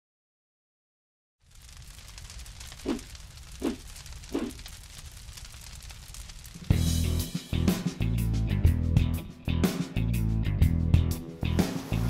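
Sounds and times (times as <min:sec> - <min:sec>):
fire crackling: 0:01.4 - 0:09.2.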